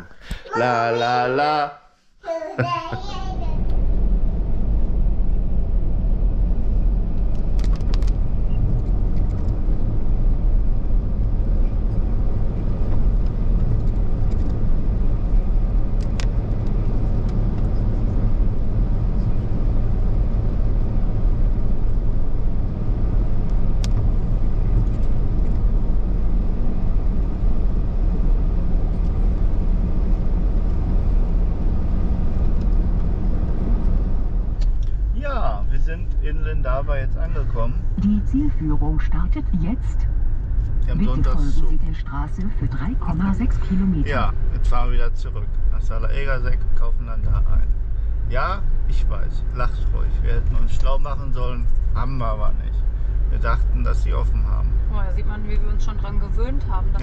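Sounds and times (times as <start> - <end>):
car tyres and engine rumble: 3.3 - 57.0.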